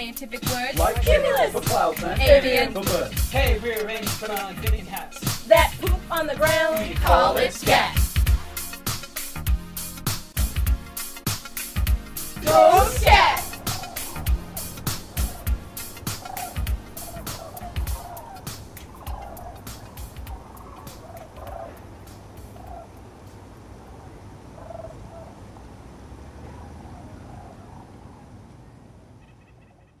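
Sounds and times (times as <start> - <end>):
drum beat: 0.4 - 22.6
fowl calls: 12.4 - 23.0.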